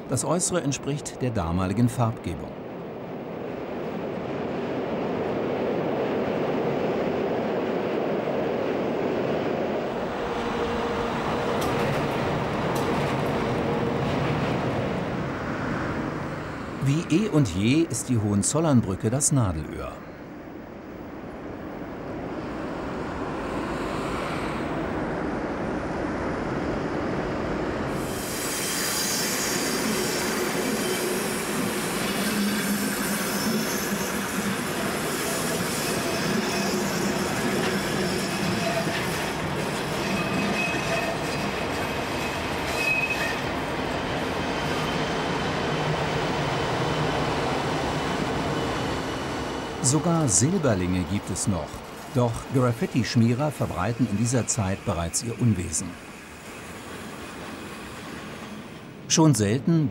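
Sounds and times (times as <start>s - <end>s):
clatter over rail joints: 11.0s - 15.2s, 36.1s - 42.7s
train wheels squealing: 28.0s - 47.2s.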